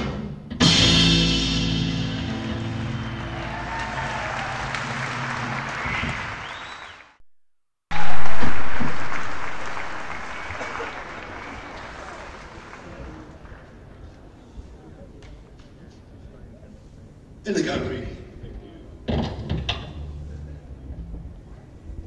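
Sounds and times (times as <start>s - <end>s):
audience applauding and cheering: 2.4s - 7.2s, 7.9s - 14.0s.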